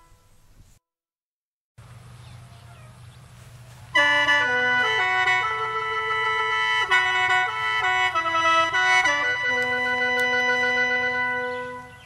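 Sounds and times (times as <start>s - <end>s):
faint animal calls: 2.2s - 3.3s.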